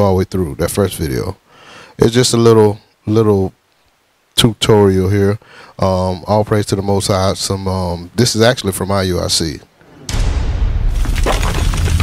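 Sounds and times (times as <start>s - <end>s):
crackling shattering noise: 10.1s - 12.0s.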